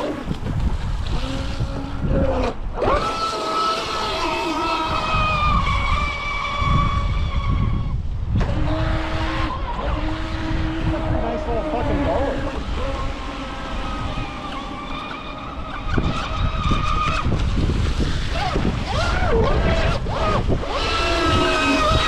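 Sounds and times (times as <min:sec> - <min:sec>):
wind rumble on microphone: 0:00.0 - 0:22.0
electric motor whining: 0:01.0 - 0:22.0.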